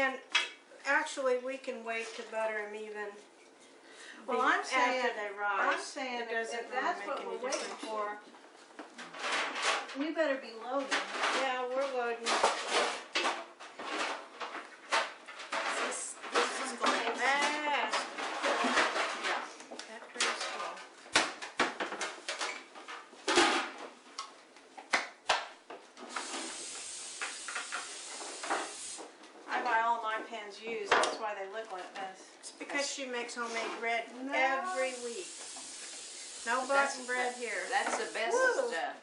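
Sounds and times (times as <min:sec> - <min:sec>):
aerosol spray hissing: 0:26.1 - 0:29.1, 0:34.7 - 0:38.6.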